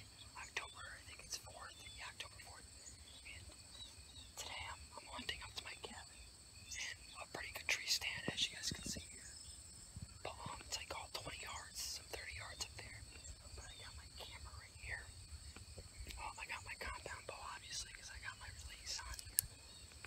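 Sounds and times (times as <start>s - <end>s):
young man whispering: 0.0s - 3.6s, 4.3s - 9.4s, 10.2s - 15.2s, 16.0s - 19.6s.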